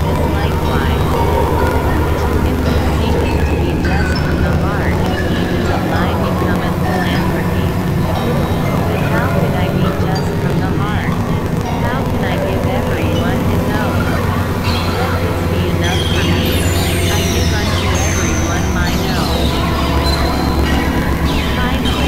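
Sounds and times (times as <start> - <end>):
electronic synthesizer drone music: 0.0 - 22.0.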